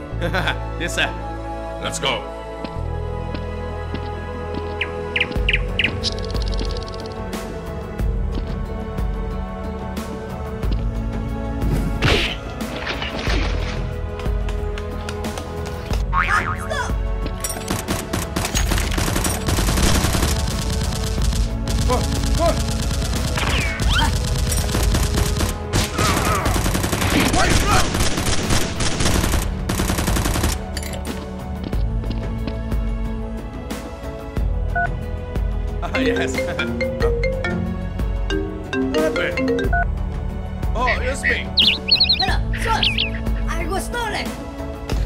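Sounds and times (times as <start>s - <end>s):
background music: 0.0s - 45.0s
machine-gun fire: 17.7s - 30.6s
people shouting: 25.8s - 28.0s.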